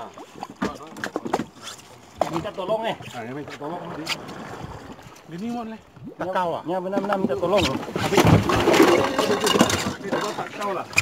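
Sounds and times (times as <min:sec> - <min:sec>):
water noise: 0:00.0 - 0:11.0
wind: 0:00.0 - 0:11.0.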